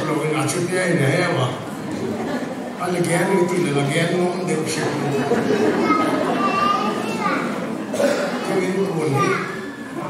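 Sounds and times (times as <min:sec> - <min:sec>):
man speaking into a microphone: 0:00.0 - 0:01.8, 0:02.8 - 0:06.3, 0:08.0 - 0:09.6
children's voices: 0:00.0 - 0:10.0.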